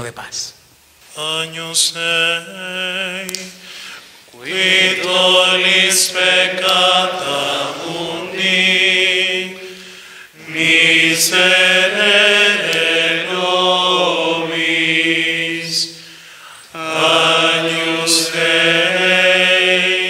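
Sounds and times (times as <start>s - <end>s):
person singing liturgical chant: 1.1s - 20.0s.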